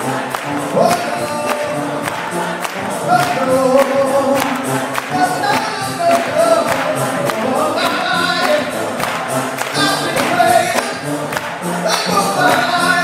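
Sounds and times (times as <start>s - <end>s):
gospel choir singing: 0.0s - 13.0s
steady beat: 0.0s - 13.0s.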